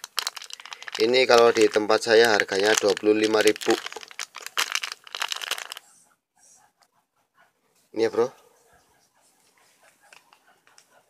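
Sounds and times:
foil sachet crinkling: 0.0s - 5.9s.

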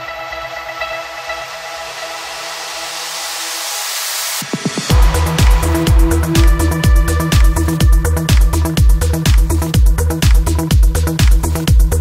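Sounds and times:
low pulsing beat: 4.4s - 12.0s.

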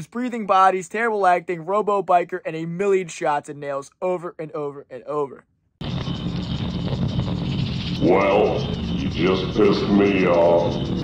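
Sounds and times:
dense horror film music: 5.8s - 11.0s.

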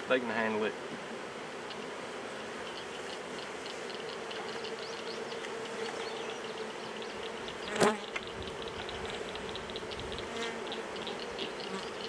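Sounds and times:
honey bees buzzing: 0.0s - 12.0s.

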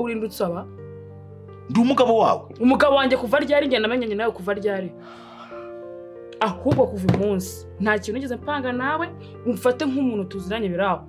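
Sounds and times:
quiet background music: 0.0s - 11.0s
breathy exhale: 5.0s - 5.8s
person speaking: 6.4s - 7.5s.

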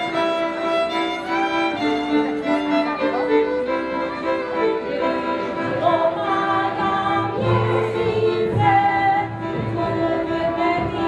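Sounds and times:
bowed string melody: 0.0s - 11.0s
children singing: 4.8s - 11.0s.

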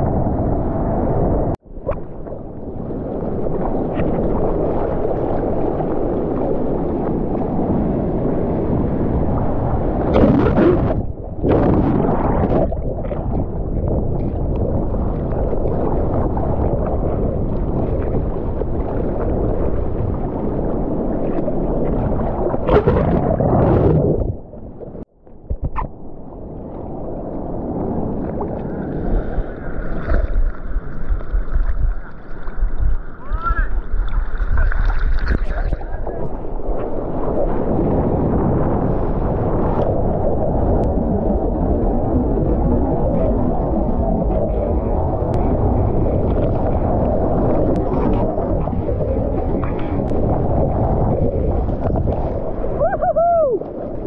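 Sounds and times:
seawater splashing against camera: 28.4s - 37.5s.

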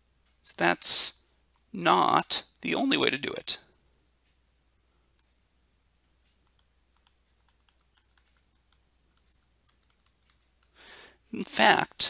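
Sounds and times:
faint low hum: 0.0s - 12.0s
stylus tapping on screen: 6.3s - 10.8s.

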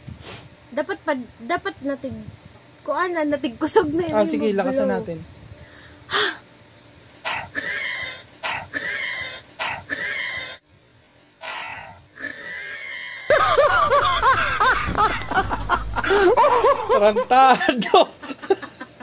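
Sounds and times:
puffs of breath into paper: 0.0s - 0.6s, 5.6s - 6.4s
loud laughter: 12.5s - 19.0s
phone handling rumble: 13.3s - 17.3s.

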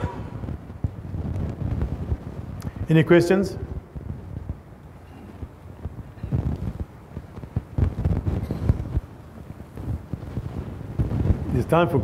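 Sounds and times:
clothing rubbing on microphone: 0.0s - 2.9s, 3.7s - 11.8s.

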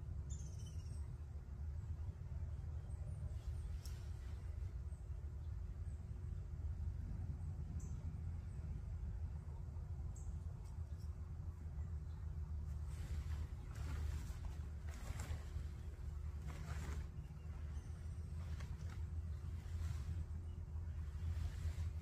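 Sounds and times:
steady low rumble: 0.0s - 22.0s
tent fabric rustling: 12.6s - 22.0s.

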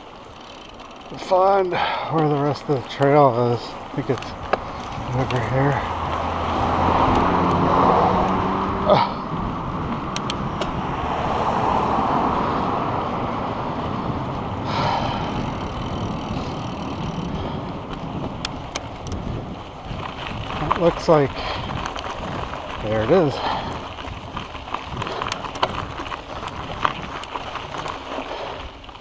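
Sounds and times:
cars passing: 0.0s - 29.0s
wind rushing on microphone: 3.3s - 29.0s.

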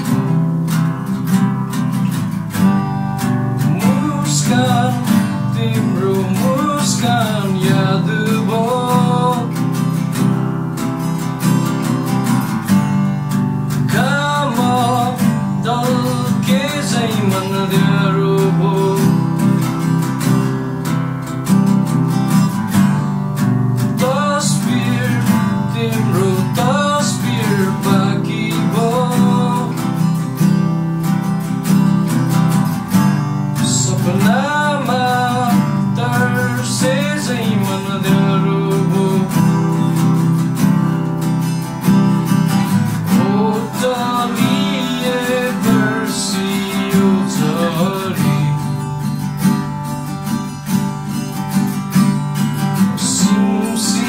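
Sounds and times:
acoustic guitars playing chords: 0.0s - 54.0s
man singing slow melody: 3.6s - 10.0s, 13.8s - 19.7s, 23.9s - 30.2s, 33.5s - 40.4s, 42.9s - 49.2s, 52.8s - 54.0s.

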